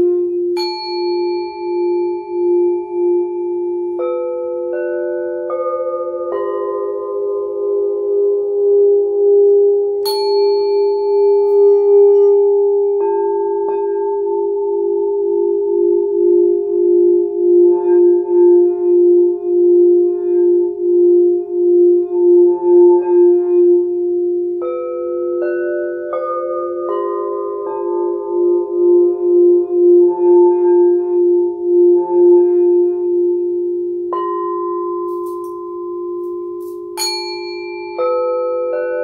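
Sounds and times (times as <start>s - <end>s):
singing bowls ringing: 0.0s - 39.0s.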